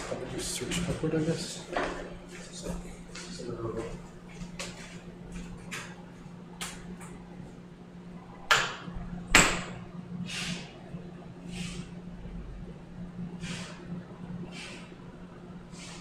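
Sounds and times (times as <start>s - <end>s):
sharp knocks: 8.5s - 9.7s.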